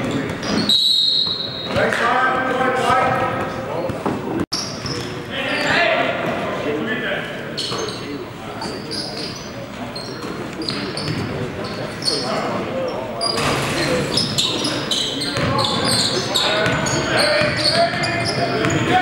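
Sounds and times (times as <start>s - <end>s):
players' voices echoing: 0.0s - 19.0s
ball bouncing on hardwood court: 15.4s - 15.6s.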